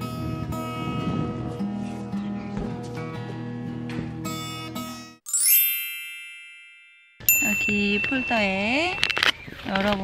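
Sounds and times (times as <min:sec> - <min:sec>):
acoustic guitar music: 0:00.0 - 0:05.2
bell-like chime sound effect: 0:05.3 - 0:09.3.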